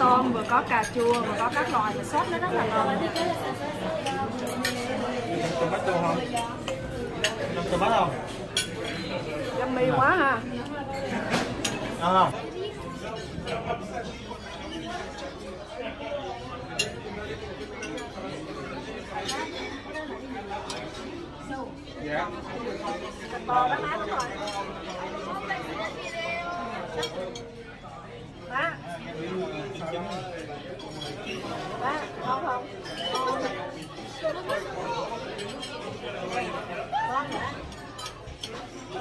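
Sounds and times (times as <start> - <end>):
overlapping chatter of people: 0.0 - 39.0
dishes and cutlery clinking: 0.1 - 15.7, 16.7 - 21.3, 22.6 - 28.0, 30.0 - 39.0.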